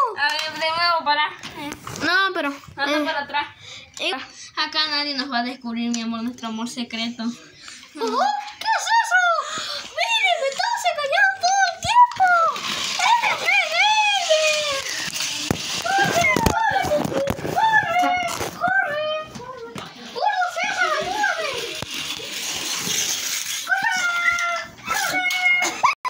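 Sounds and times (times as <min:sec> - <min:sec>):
children squealing and playing: 0:07.8 - 0:26.0.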